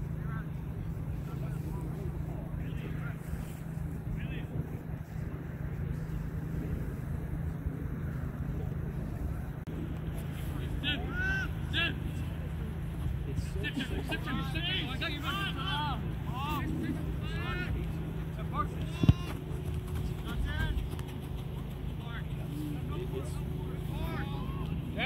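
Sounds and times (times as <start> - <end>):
faint distant voices: 0.0 - 25.0
low steady rumble: 0.0 - 25.0.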